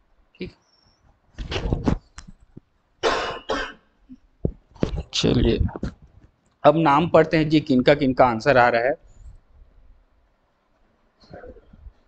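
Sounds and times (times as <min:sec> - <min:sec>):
man coughing: 0:03.0 - 0:03.8.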